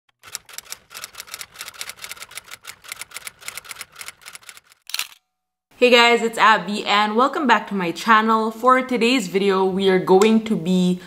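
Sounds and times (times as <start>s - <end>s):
typewriter key clicking: 0.2s - 5.2s.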